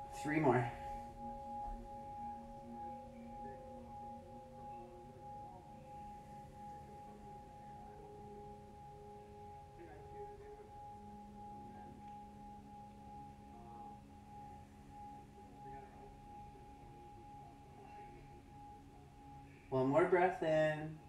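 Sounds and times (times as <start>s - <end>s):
ambient music with bell-like tones: 0.0s - 21.0s.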